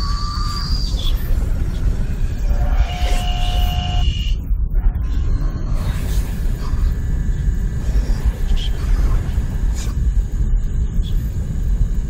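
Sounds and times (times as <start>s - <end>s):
heavy low rumble: 0.0s - 12.0s.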